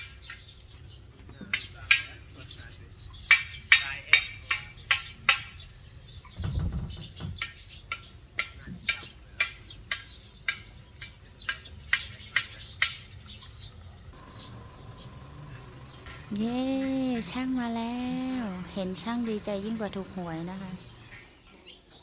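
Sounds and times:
hammer striking metal: 0:01.5 - 0:02.3, 0:03.2 - 0:05.6
dull low thump: 0:04.8 - 0:07.5.

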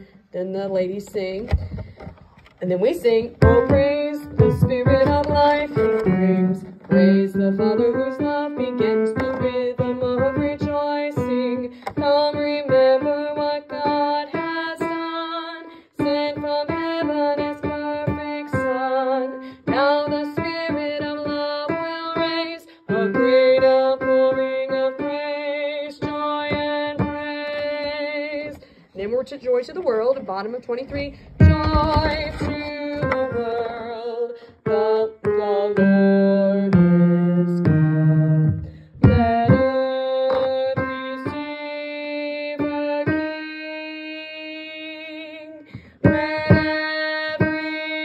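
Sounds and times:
piano accompaniment: 0:02.9 - 0:28.6, 0:30.8 - 0:48.0.

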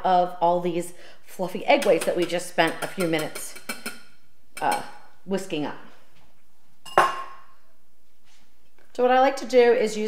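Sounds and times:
whisk clanging on steel bowl: 0:01.7 - 0:04.8.

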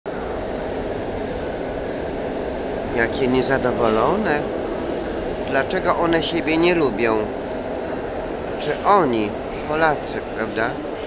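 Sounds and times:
loud rumbling station noise: 0:00.0 - 0:11.0.

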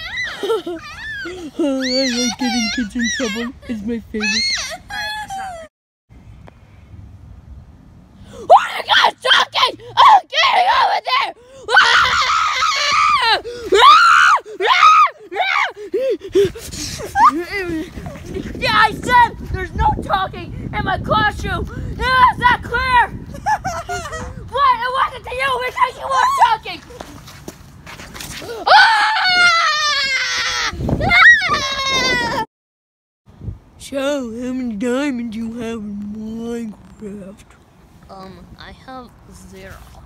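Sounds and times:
boys screaming: 0:00.0 - 0:05.6, 0:08.4 - 0:19.1, 0:28.5 - 0:32.5.

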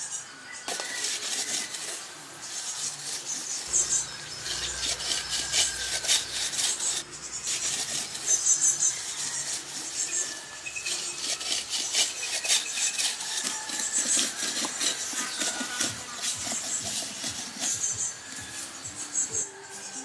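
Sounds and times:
stone scraping wooden shaft: 0:00.7 - 0:19.5.

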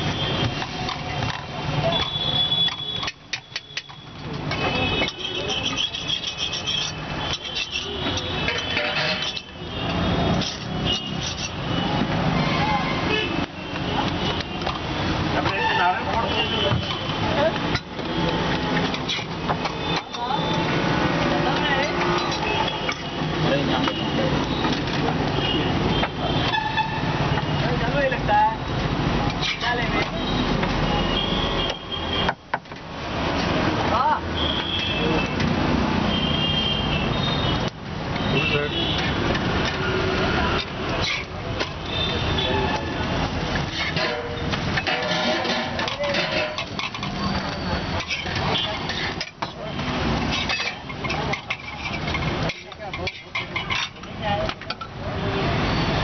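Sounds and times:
vehicle traffic: 0:00.0 - 0:56.0
people talking: 0:45.0 - 0:46.6.

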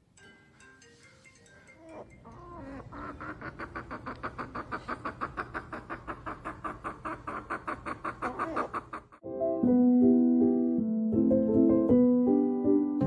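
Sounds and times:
chicken clucking: 0:01.8 - 0:09.2.

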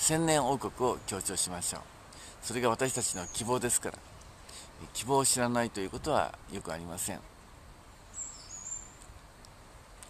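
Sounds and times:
man's voice: 0:04.8 - 0:07.2.

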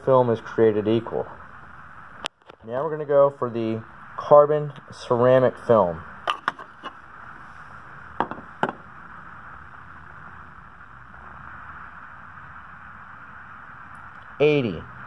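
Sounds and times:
steady background hiss: 0:00.0 - 0:15.0.

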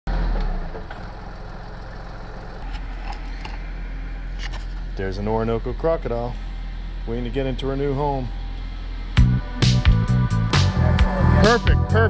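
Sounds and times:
low engine-like rumble: 0:00.1 - 0:12.0.

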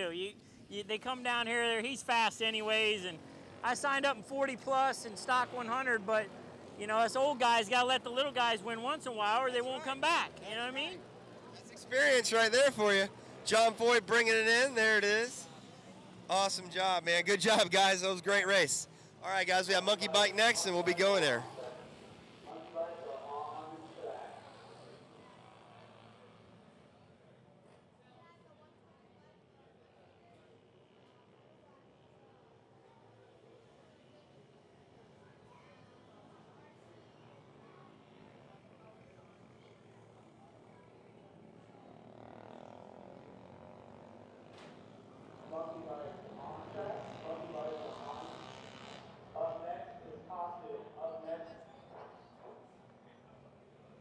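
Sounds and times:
low outdoor background noise: 0:00.0 - 0:54.0
man talking off-microphone: 0:11.8 - 0:15.4, 0:16.3 - 0:21.5.

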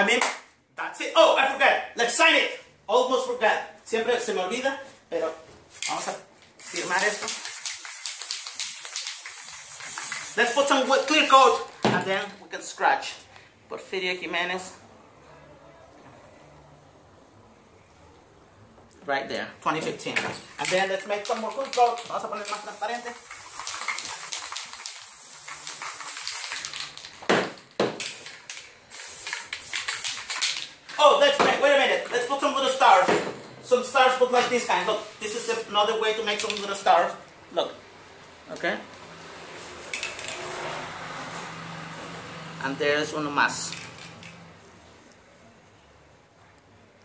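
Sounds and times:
spray paint can hissing: 0:05.8 - 0:11.8, 0:20.6 - 0:30.9, 0:34.8 - 0:36.9, 0:39.9 - 0:40.4, 0:43.6 - 0:44.3.

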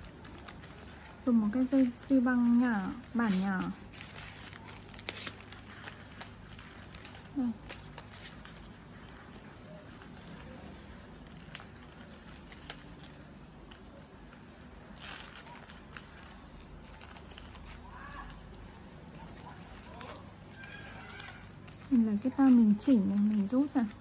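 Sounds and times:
paper wrapping rustling: 0:00.0 - 0:24.0.

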